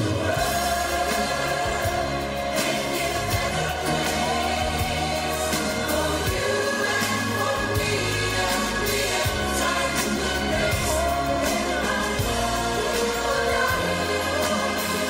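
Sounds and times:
band playing: 0.0s - 15.0s
large choir singing: 0.0s - 15.0s
steady bass line: 0.0s - 15.0s.

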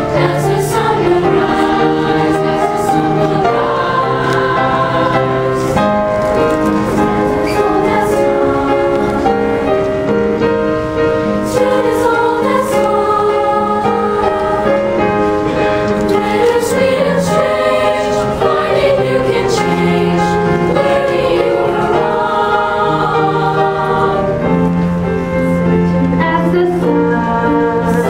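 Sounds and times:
choir singing: 0.0s - 10.3s, 11.3s - 25.2s, 26.2s - 28.0s
instrumental accompaniment: 0.0s - 28.0s.

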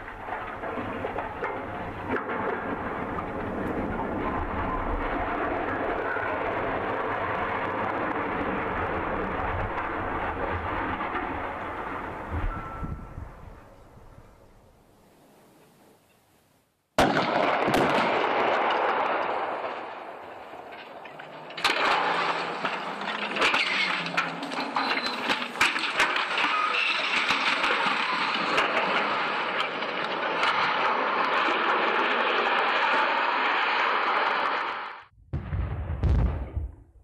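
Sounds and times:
explosive blast: 17.0s - 19.9s, 35.1s - 37.0s
sharp cracking noise: 17.0s - 35.1s
low thumps: 35.2s - 37.0s.

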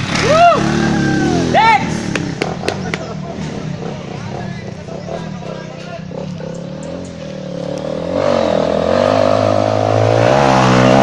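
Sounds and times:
person shouting: 0.2s - 2.0s.

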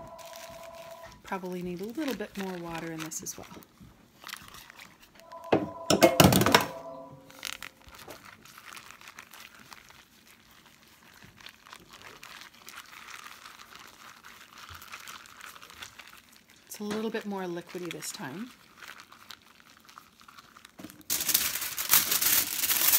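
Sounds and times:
plastic bag crinkling: 0.0s - 5.2s, 7.2s - 22.9s.

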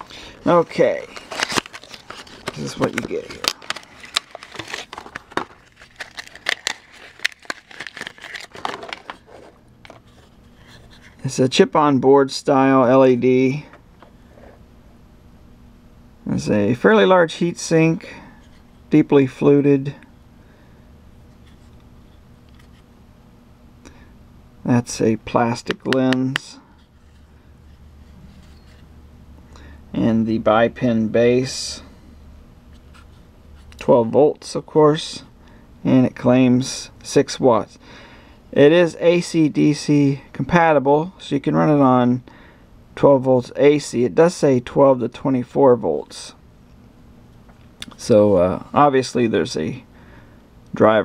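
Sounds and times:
low steady hum: 0.0s - 51.0s
plastic wrapping crinkling: 0.4s - 10.2s
cardboard box handling: 0.7s - 10.4s.

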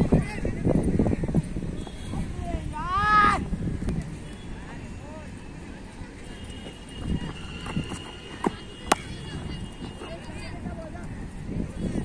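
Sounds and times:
distant voices: 3.8s - 11.4s
footsteps on dirt: 6.6s - 10.4s
cricket bat hitting ball: 7.8s - 10.0s.

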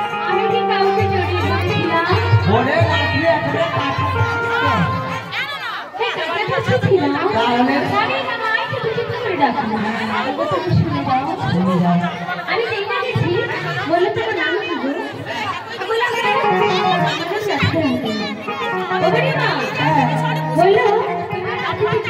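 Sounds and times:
amplified speech through pa: 0.0s - 22.0s
overlapping voices chattering: 0.0s - 22.0s.

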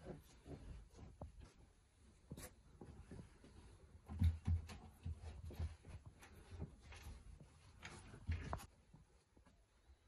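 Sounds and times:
bedding rustling: 0.0s - 10.0s.

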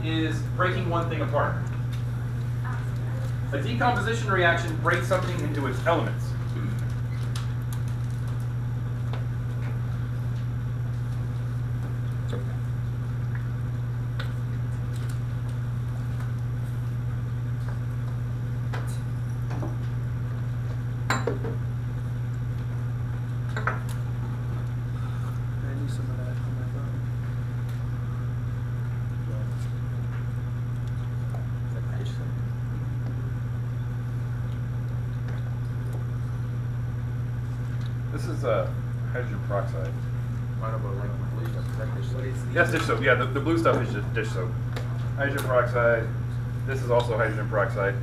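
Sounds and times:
steady low hum: 0.0s - 48.0s.

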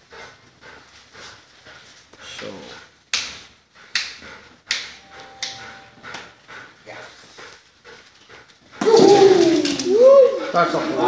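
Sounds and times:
dog whining: 8.8s - 11.0s.

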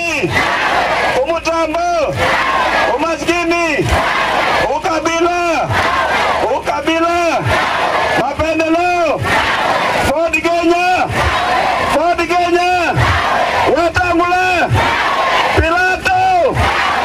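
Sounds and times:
crowd shouting in unison: 0.0s - 1.3s, 1.9s - 17.0s
man shouting phrases: 10.1s - 11.1s, 13.7s - 14.8s, 15.6s - 16.6s.

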